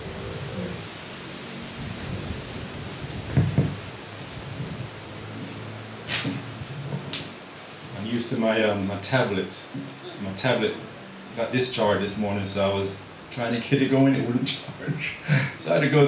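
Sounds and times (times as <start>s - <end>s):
room noise hiss: 0.0s - 16.0s
microphone rustles: 1.8s - 8.0s.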